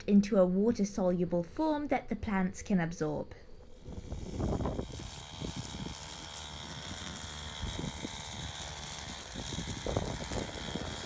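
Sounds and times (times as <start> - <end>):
petrol brushcutter running: 3.7 - 11.0.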